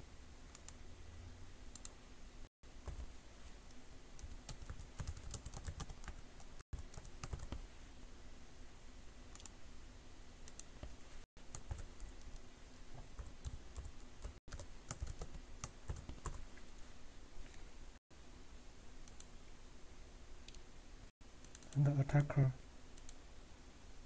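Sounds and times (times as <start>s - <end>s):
faint steady hum: 0.0s - 24.0s
typing on computer keyboard: 4.2s - 6.2s, 6.8s - 7.6s, 11.5s - 12.3s, 13.2s - 16.4s.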